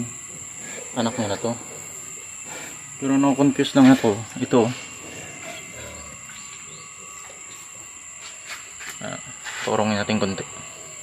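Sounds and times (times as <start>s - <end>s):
faint chirps: 0.0s - 9.3s
high-pitched insect drone: 0.0s - 11.0s.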